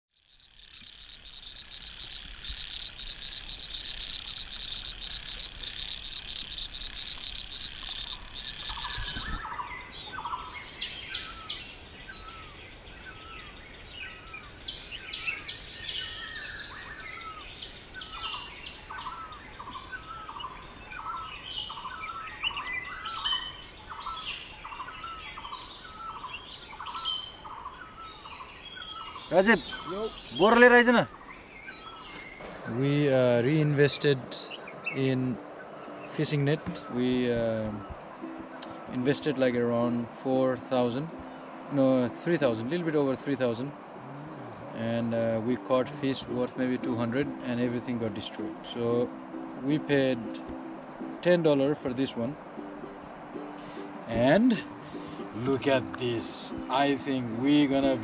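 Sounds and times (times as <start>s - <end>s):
insects trilling: 0.1s - 39.7s
birds chirping: 0.1s - 58.0s.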